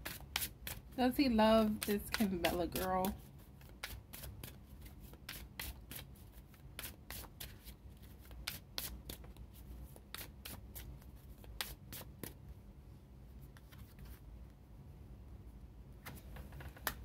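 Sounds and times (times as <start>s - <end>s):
cards being shuffled: 1.6s - 12.4s, 13.5s - 14.2s.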